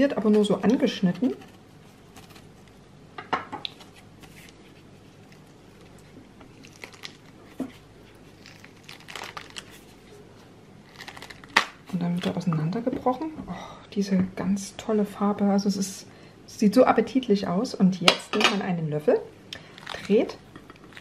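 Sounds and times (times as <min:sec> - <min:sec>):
pomegranate rind cracking and tearing: 0:01.1 - 0:02.8, 0:03.6 - 0:10.1, 0:10.8 - 0:12.4.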